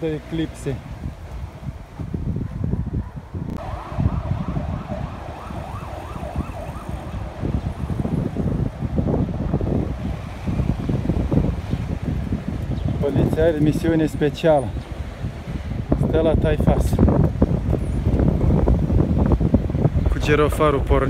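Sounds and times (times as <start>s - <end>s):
street traffic: 0.0s - 21.0s
wind rumbling on microphone: 0.0s - 21.0s
emergency vehicle siren yelping: 3.1s - 9.0s.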